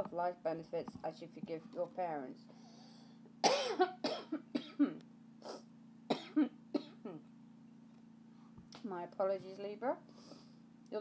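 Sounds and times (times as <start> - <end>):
woman coughing: 3.4 - 5.0, 6.1 - 7.2.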